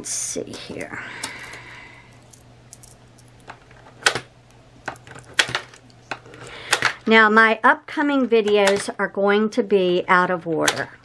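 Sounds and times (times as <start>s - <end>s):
coins clinking: 2.1s - 5.9s.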